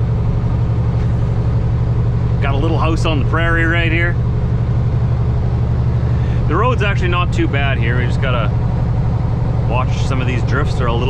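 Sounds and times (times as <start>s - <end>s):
road noise: 0.0s - 11.0s
truck diesel engine drone: 0.0s - 11.0s.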